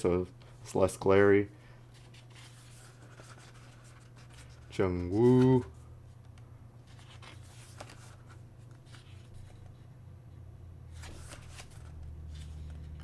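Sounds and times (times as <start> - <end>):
paper pages rustling: 1.9 - 9.8, 10.9 - 13.0
page turning swish: 10.9 - 13.0.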